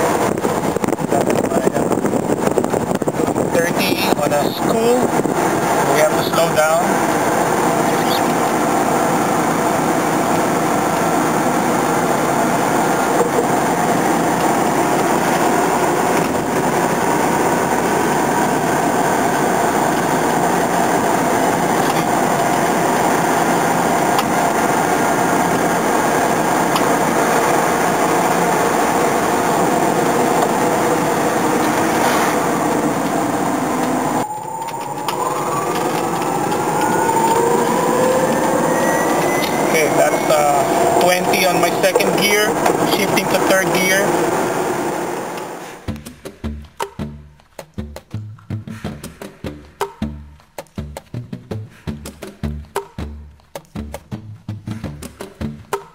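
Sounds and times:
road noise in car cabin: 0.0 - 46.0
electric motor whining: 14.3 - 42.9.

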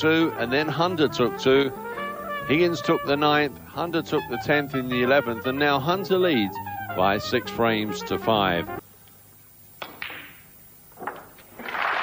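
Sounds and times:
cue tip hitting cue ball: 9.8 - 10.4.

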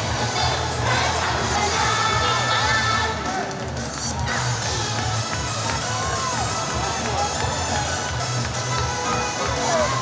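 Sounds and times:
audience shouting and cheering: 0.0 - 10.0
upbeat pop song over speakers: 0.0 - 10.0.

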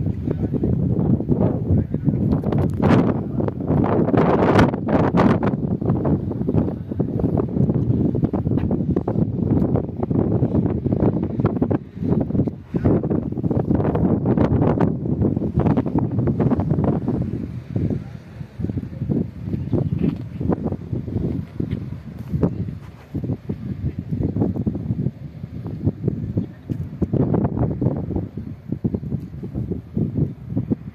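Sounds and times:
wind buffeting the microphone: 0.0 - 30.9.

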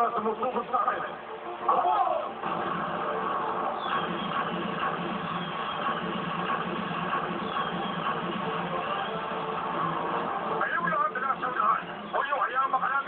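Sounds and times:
anime soundtrack music: 0.0 - 13.0
falling whistles: 3.7 - 6.2, 7.4 - 9.6.

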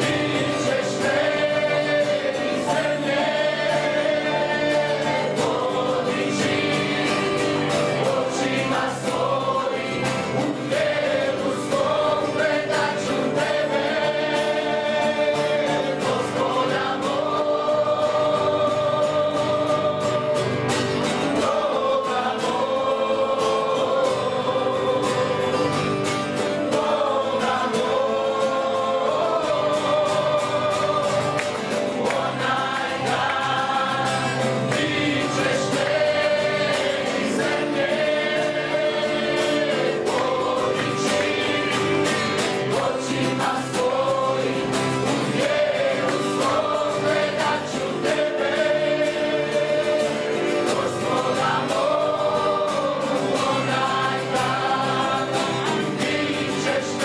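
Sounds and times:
keyboard playing: 0.0 - 56.8
group singing a hymn: 0.0 - 57.0
strummed acoustic guitars: 0.0 - 57.0.

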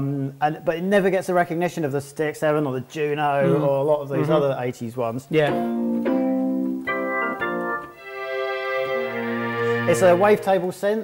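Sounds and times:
synthesizer chords: 5.5 - 10.7.

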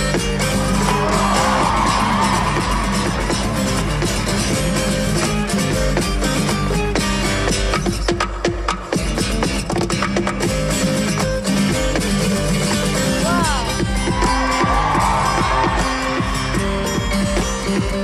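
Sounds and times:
fingerstyle acoustic guitar: 0.0 - 18.0
audience cheering: 0.5 - 5.1, 13.3 - 17.9.

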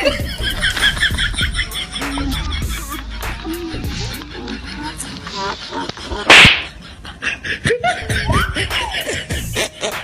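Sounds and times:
voices: 0.0 - 9.5
laughter: 0.0 - 10.0
smacks and clicks: 4.1 - 6.8
slap-like hits: 6.2 - 6.8.

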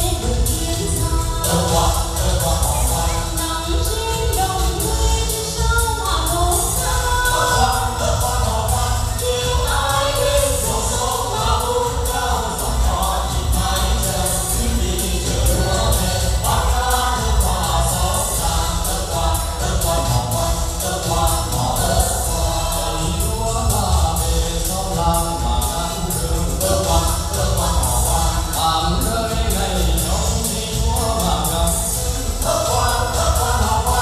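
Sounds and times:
accompaniment with heavy bass beat: 0.0 - 34.0
group singing on microphones: 0.0 - 34.0.

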